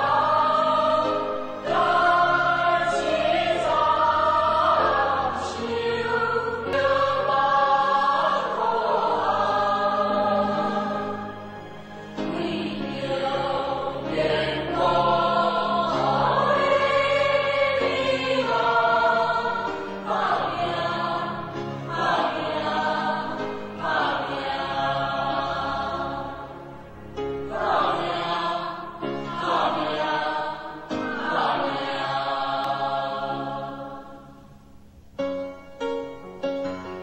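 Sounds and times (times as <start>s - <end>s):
choir singing: 0.0s - 34.5s.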